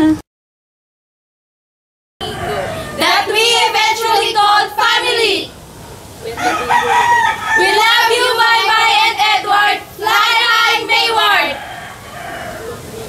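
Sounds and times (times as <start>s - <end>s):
young women singing together: 2.2s - 5.6s, 7.6s - 11.6s.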